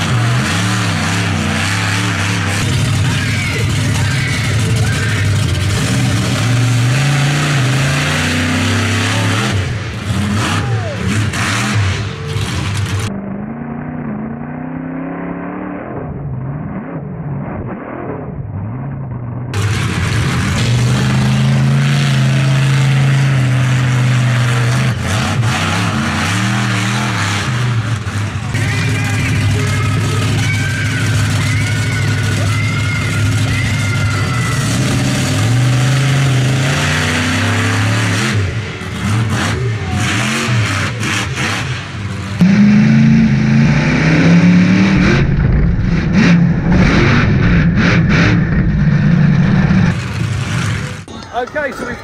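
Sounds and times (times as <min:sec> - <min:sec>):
monster truck engine revving: 0:00.0 - 0:51.5.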